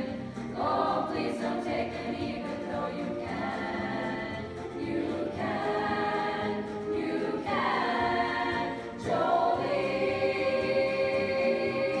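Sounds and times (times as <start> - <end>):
girls' choir singing: 0.0 - 12.0.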